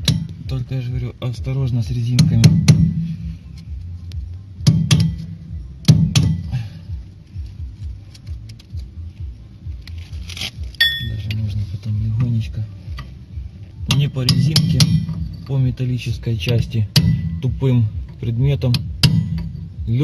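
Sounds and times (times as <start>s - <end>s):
short metallic ring: 10.8s - 11.2s.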